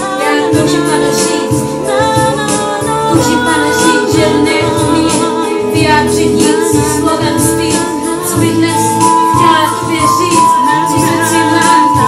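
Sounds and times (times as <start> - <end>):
backing melody: 0.0 - 12.0
woman singing worship song: 0.0 - 12.0.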